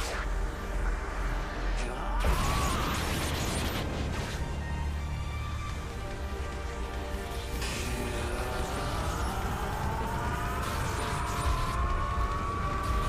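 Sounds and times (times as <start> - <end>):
dramatic film score: 0.0 - 13.0.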